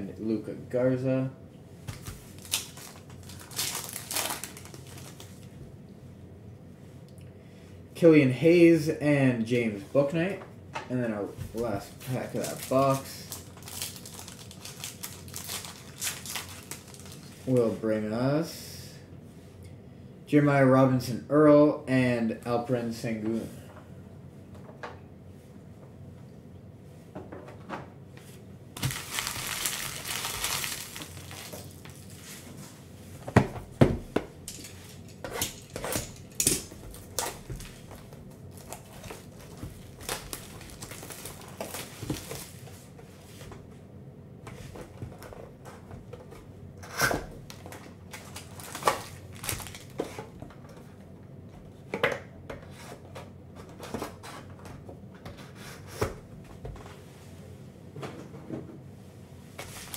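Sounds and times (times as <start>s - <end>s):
cardboard and foil rustling: 1.9s - 5.5s, 11.6s - 17.6s, 28.8s - 32.6s, 34.5s - 42.9s, 47.5s - 50.2s, 59.6s - 59.9s
foil tearing and crinkling: 1.9s - 5.5s, 12.0s - 17.4s, 28.8s - 32.4s, 35.4s - 42.7s, 48.1s - 50.0s, 59.6s - 59.9s.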